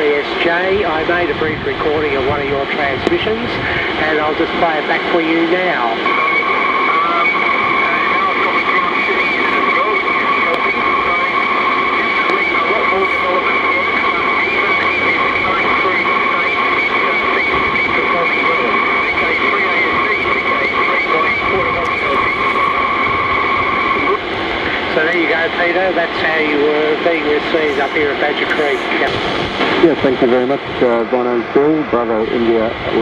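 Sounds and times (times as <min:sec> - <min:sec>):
radio band noise: 0:00.0 - 0:33.0
voice over radio: 0:00.0 - 0:33.0.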